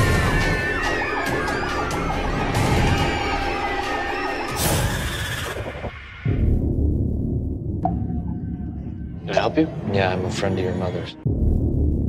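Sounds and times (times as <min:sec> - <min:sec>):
wailing siren-like tones: 0:00.0 - 0:06.5, 0:07.8 - 0:11.2.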